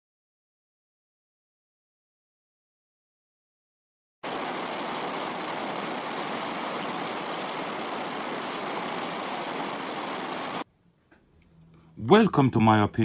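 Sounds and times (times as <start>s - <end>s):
static-like hiss: 4.2s - 10.6s.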